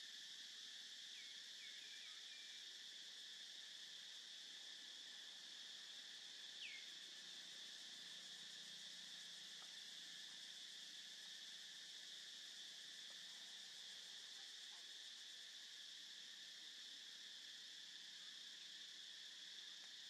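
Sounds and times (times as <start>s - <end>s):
insects chorus shrill hum: 0.0s - 20.0s.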